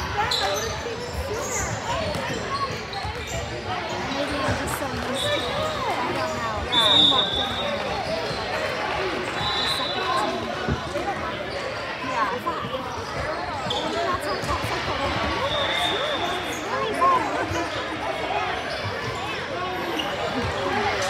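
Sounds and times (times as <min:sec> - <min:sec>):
voices echoing in hall: 0:00.0 - 0:21.0.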